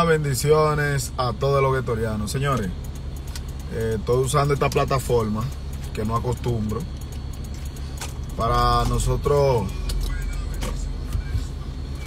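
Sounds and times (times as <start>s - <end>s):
car engine: 0.0s - 12.0s
road rumble: 0.0s - 12.0s.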